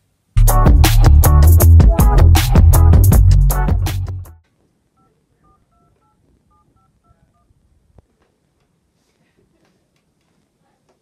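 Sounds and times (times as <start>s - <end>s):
phone dialing beeps: 5.0s - 7.5s.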